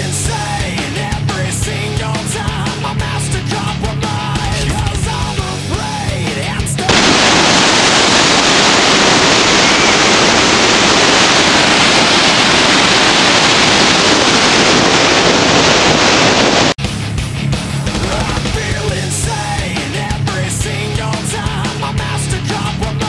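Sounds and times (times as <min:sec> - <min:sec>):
rock music: 0:00.0 - 0:08.4, 0:16.6 - 0:23.0
waterfall rushing: 0:06.9 - 0:16.8.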